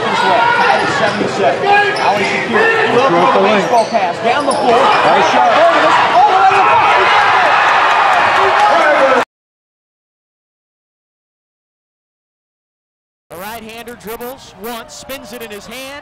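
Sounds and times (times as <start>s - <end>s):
crowd shouting and cheering: 0.0s - 9.3s, 13.3s - 16.0s.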